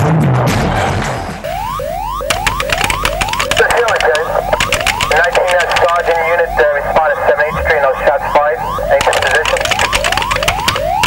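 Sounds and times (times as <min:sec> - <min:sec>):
warbling electronic tone: 0:01.5 - 0:11.0
fast sharp clicks: 0:02.2 - 0:06.2, 0:09.0 - 0:11.0.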